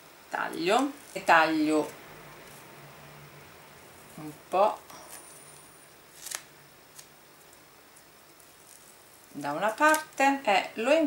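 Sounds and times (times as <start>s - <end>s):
scissors snipping paper tape: 6.2s - 7.1s, 8.7s - 10.2s.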